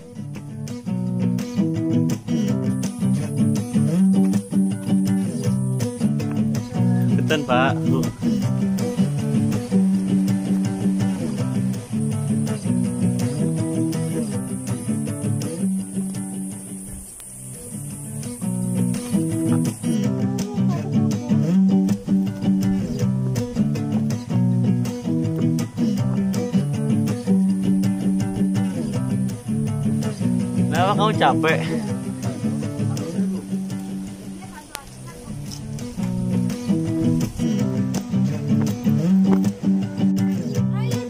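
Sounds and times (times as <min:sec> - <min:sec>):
music with plucked guitar: 0:00.0 - 0:41.0.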